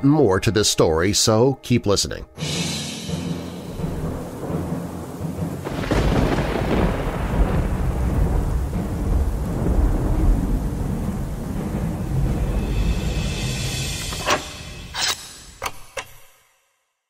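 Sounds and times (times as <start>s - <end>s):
rain: 3.0s - 14.2s
thunder rumbling: 3.1s - 14.9s.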